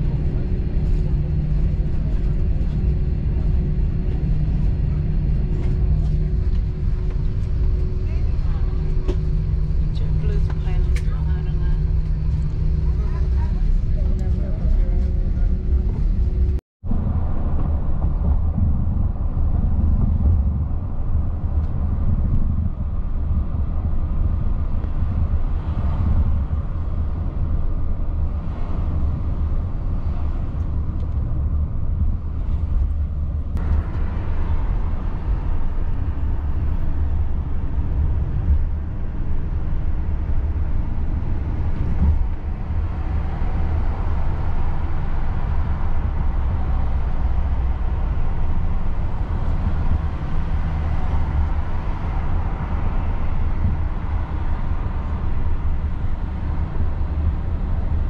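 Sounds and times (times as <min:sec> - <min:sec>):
car engine and tyre rumble: 0:00.0 - 0:58.0.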